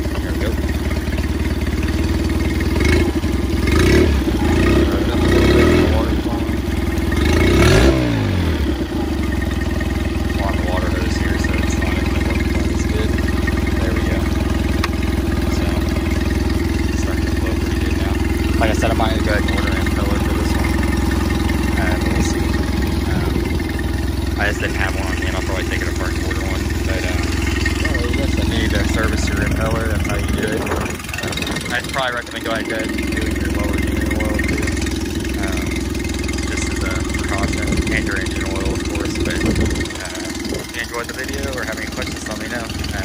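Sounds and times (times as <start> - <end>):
cooling water flowing: 0.0 - 43.0
outboard engine running: 0.0 - 43.0.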